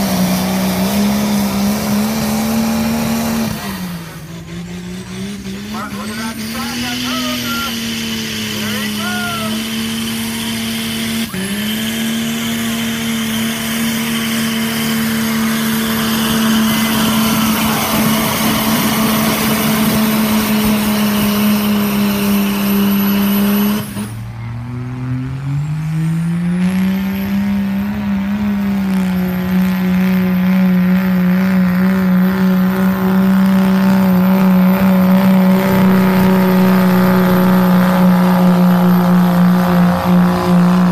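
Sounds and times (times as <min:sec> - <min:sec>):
diesel engine at high revs: 0:00.0 - 0:40.9
second diesel engine revving: 0:00.0 - 0:40.9.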